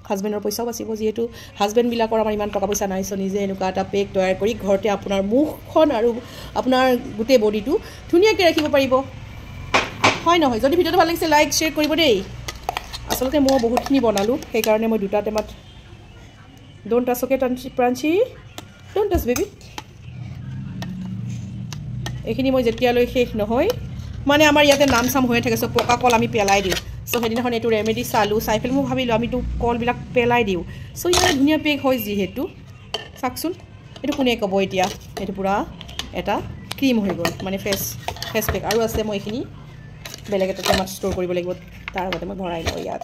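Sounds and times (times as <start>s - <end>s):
woman speaking: 0.0s - 9.1s, 10.2s - 12.4s, 13.0s - 21.0s, 22.2s - 43.0s
steel pot clinking: 11.0s - 15.6s, 21.7s - 28.6s, 32.9s - 39.4s, 40.0s - 43.0s.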